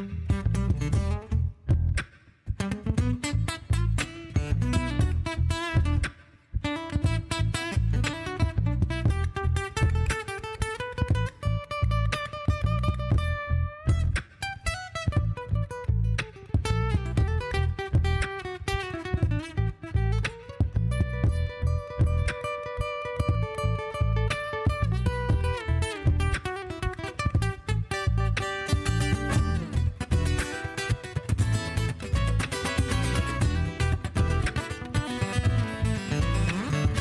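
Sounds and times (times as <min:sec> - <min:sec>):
acoustic guitar solo: 0:00.0 - 0:01.9, 0:02.6 - 0:37.0
looped low beat: 0:00.0 - 0:37.0.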